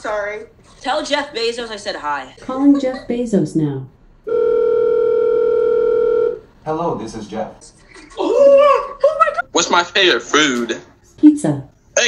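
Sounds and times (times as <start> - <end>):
telephone ringback tone: 4.3 - 6.4.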